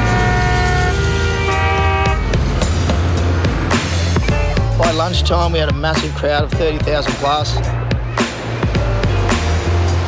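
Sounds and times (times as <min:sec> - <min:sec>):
car horn: 0:00.0 - 0:02.4
background music with low beat: 0:00.0 - 0:10.0
traffic noise: 0:00.0 - 0:10.0.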